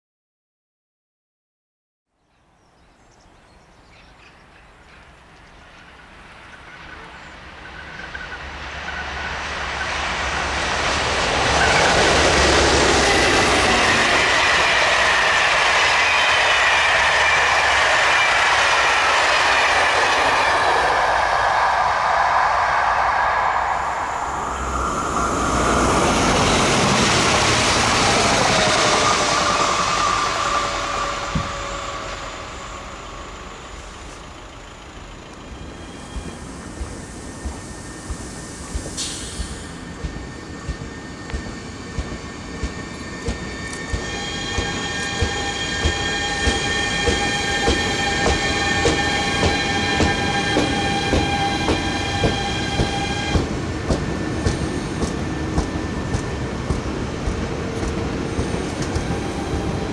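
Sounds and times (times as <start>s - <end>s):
train passing by: 3.0s - 59.9s
electric train whine: 3.1s - 59.9s
train wheels clicking over joints: 34.9s - 59.8s.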